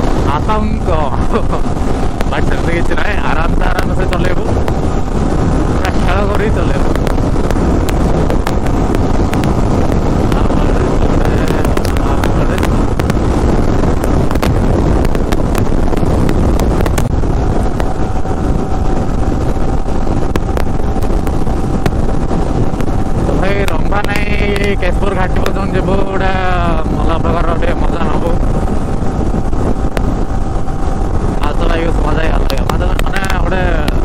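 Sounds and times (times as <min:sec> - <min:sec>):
motorcycle engine running: 0:00.0 - 0:34.0
wind buffeting microphone: 0:00.0 - 0:34.0.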